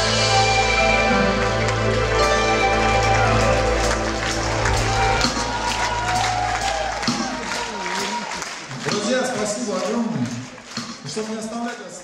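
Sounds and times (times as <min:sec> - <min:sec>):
live band final chord: 0:00.0 - 0:07.6
audience applauding and cheering: 0:00.0 - 0:12.0.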